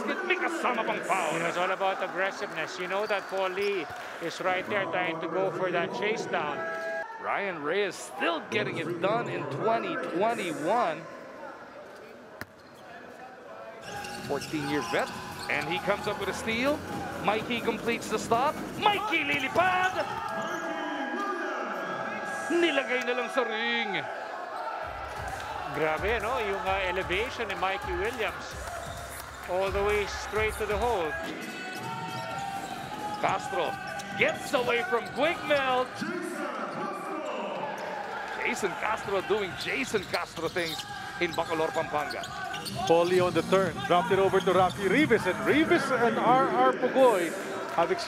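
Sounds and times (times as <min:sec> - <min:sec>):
players calling out echoing: 0:00.0 - 0:11.8, 0:12.6 - 0:48.0.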